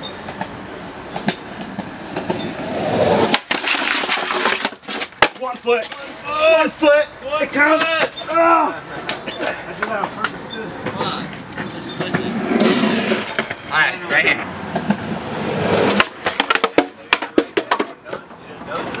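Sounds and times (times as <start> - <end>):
skateboard wheels rolling on concrete: 0.0 - 19.0.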